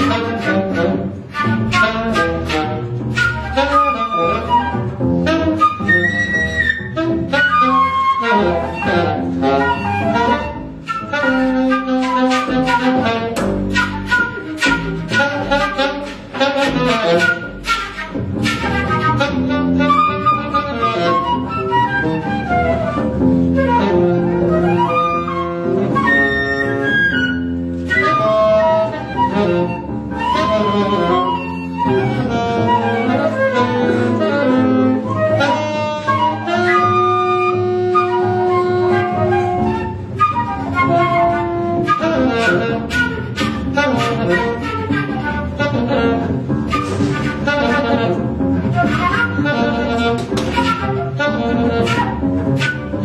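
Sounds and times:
double bass: 0:00.0 - 0:53.0
flute: 0:00.0 - 0:53.0
woodwind: 0:00.0 - 0:53.0.

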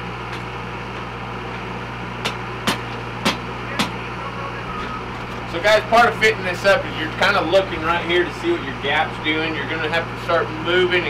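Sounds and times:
low engine hum: 0:00.0 - 0:11.0
sharp knocks on steel stands: 0:02.2 - 0:04.0.

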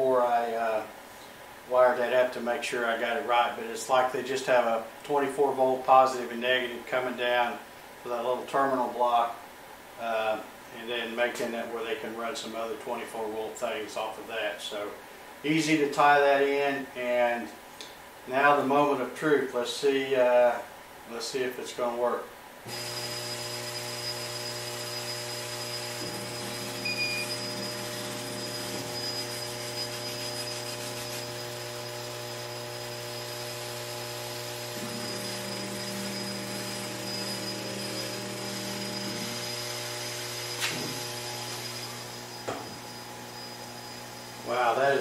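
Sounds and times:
laser engraver humming: 0:22.7 - 0:45.0.

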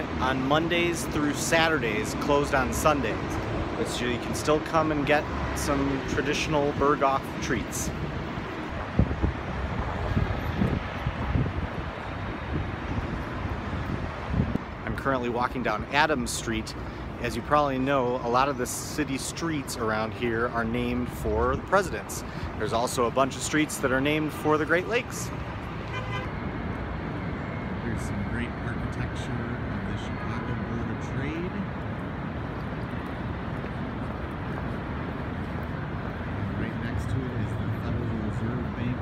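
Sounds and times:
traffic rumble: 0:00.0 - 0:39.0
wind buffeting microphone: 0:08.0 - 0:14.8.

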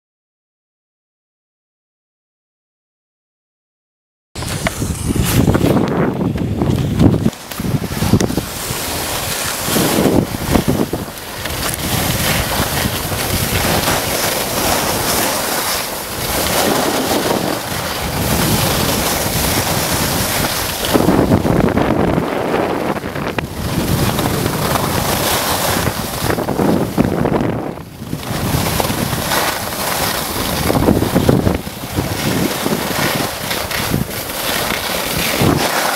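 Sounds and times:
skis hissing over snow: 0:04.4 - 0:35.9
wind buffeting microphone: 0:04.4 - 0:35.9.

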